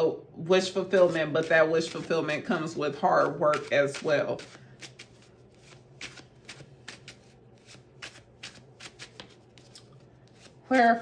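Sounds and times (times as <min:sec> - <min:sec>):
cards being shuffled: 0:03.5 - 0:10.6.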